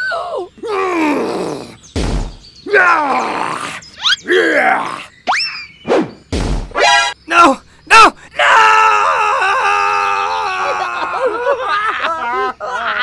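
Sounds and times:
thump: 6.3s - 6.7s.

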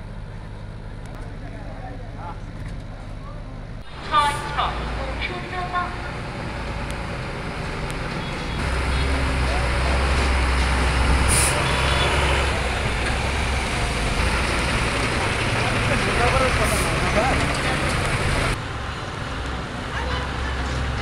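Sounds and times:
truck diesel engine rumbling: 0.0s - 21.0s.

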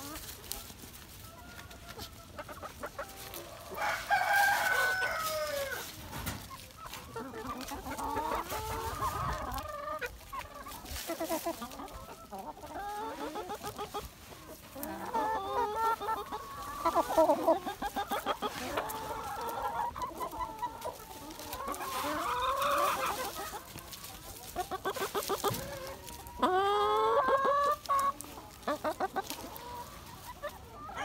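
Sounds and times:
hens clucking: 0.0s - 31.0s
rooster crowing: 3.7s - 5.8s.

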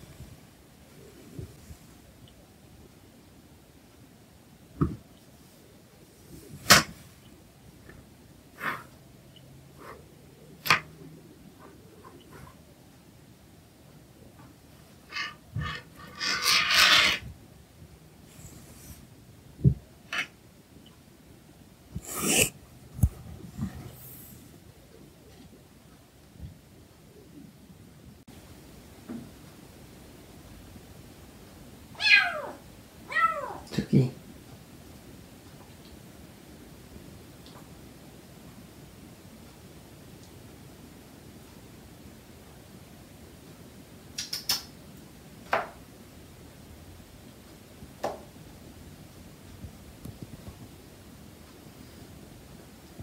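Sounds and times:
soft rustle: 0.0s - 2.4s
kitten meowing: 32.0s - 33.7s.

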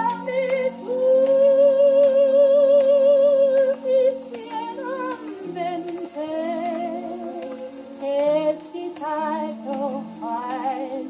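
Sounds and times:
gramophone record music: 0.0s - 11.0s.

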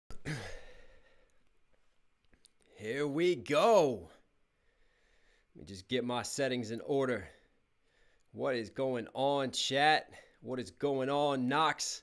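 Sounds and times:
man sighing: 0.1s - 1.3s.

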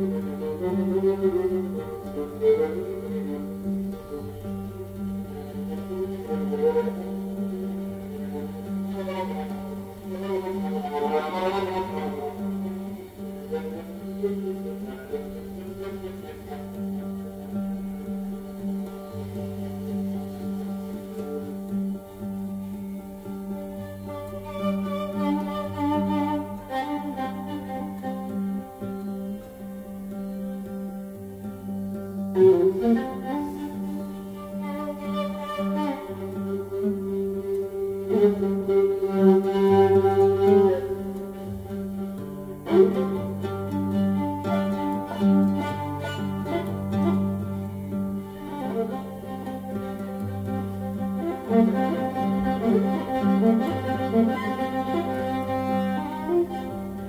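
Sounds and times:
oud plucking: 0.0s - 57.0s
viola bowing sustained notes: 0.0s - 57.0s.

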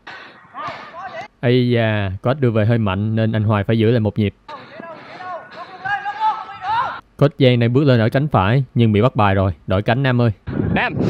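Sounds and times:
players shouting to each other: 0.5s - 1.3s, 4.5s - 7.0s.

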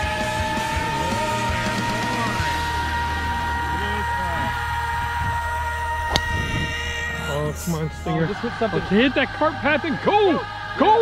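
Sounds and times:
steady sustained tones: 0.0s - 11.0s
voices: 0.0s - 11.0s
golf club striking ball: 5.5s - 7.0s.

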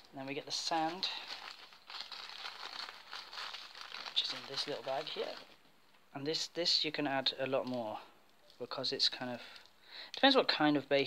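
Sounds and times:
plastic bag crinkling: 0.0s - 5.7s.

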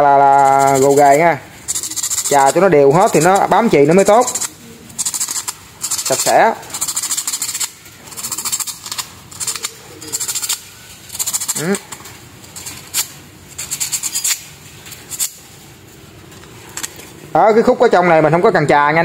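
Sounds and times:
sandpaper rasping on metal: 0.2s - 11.8s, 12.5s - 15.5s.

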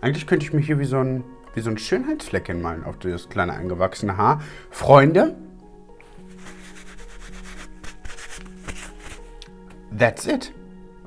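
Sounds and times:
soft background music: 0.0s - 11.0s
paper tissue rubbing: 6.2s - 9.4s.

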